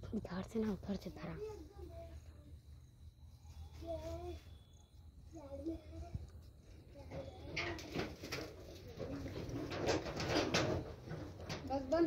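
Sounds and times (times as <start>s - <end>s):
rustling and scuffing: 3.0s - 12.0s.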